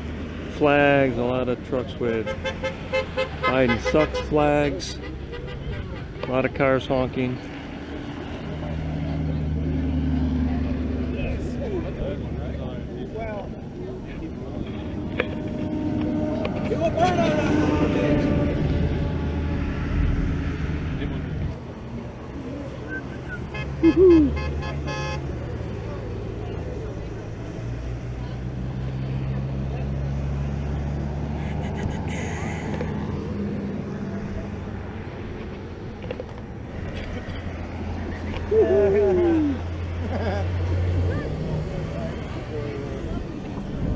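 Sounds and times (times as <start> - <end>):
vehicles driving past on highway: 0.0 - 43.9.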